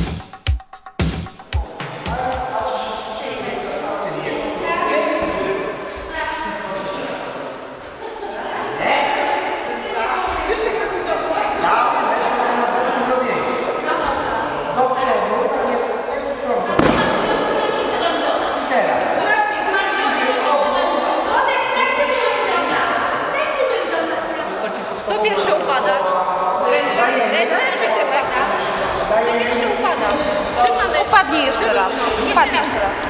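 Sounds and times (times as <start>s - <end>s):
indistinct voices talking: 1.4s - 33.0s
sharp thud: 16.8s - 18.0s.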